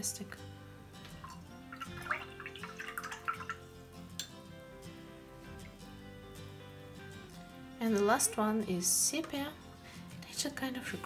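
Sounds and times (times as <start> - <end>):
soft background music: 0.0 - 11.0
water sloshing and dripping: 1.1 - 3.7.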